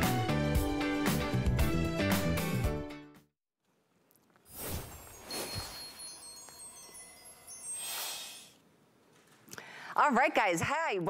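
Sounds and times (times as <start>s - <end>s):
shimmering high chime tones: 4.6s - 8.6s.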